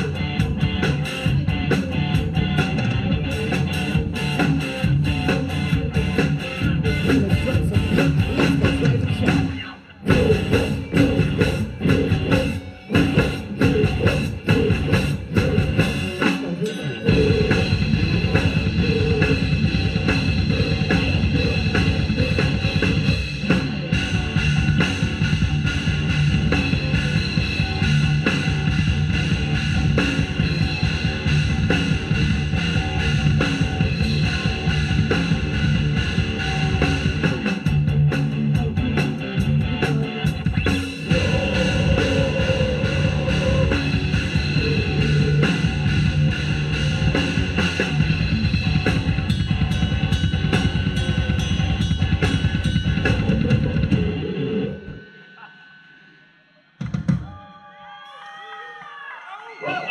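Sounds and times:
live rock band playing: 0:00.0 - 0:55.0
electric guitars: 0:00.0 - 0:55.2.

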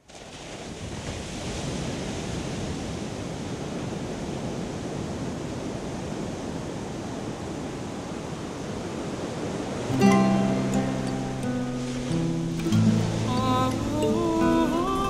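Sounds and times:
ocean surf rushing: 0:00.2 - 0:15.0.

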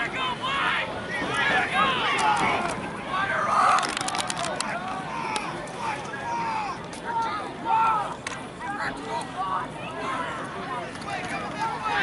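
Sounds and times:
distant indistinct voices: 0:00.0 - 0:12.0
outdoor crowd background: 0:00.0 - 0:12.0.

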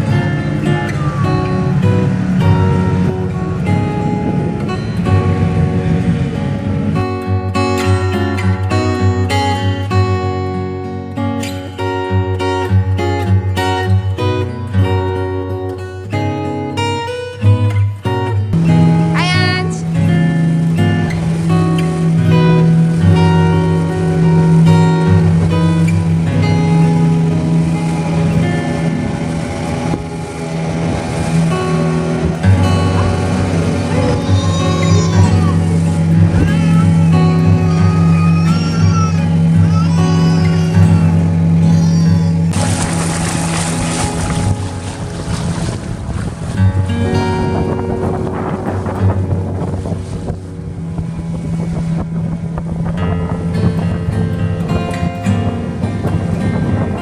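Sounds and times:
wind noise on microphone: 0:00.0 - 0:10.8, 0:18.1 - 0:57.0
acoustic guitar music: 0:00.0 - 0:57.0
motor boat engine droning: 0:00.0 - 0:57.0.

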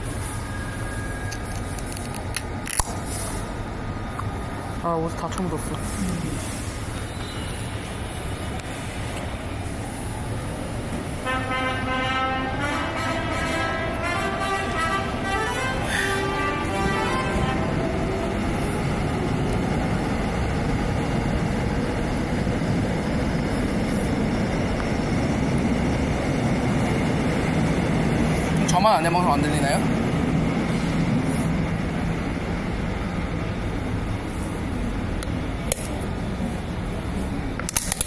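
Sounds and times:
electric train rumbling: 0:00.0 - 0:38.0.

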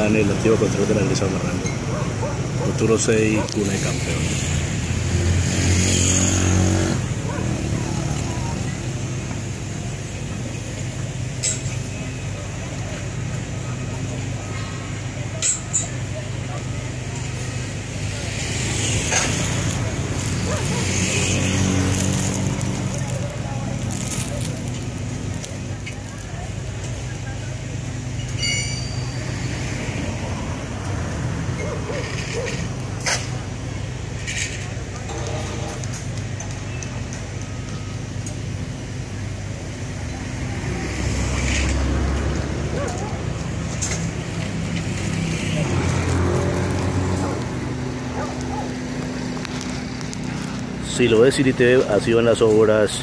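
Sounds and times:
diesel engine running: 0:00.0 - 0:53.0.

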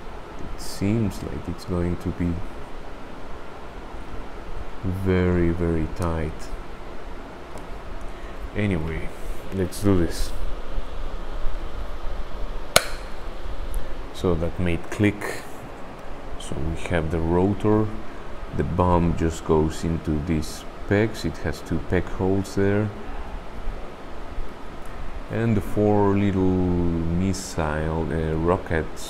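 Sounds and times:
sharp plastic click: 0:12.7 - 0:13.2.

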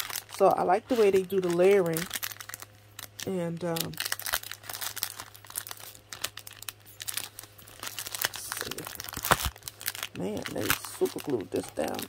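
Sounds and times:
plastic bag crinkling: 0:00.0 - 0:12.0.

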